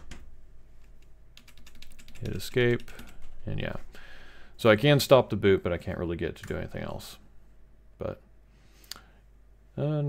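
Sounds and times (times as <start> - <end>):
keyboard key clicking rapidly: 1.4 - 3.4.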